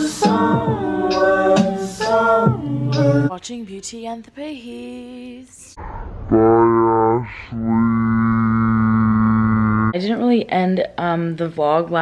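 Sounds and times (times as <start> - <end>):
voice holding long low note: 5.8 - 9.9.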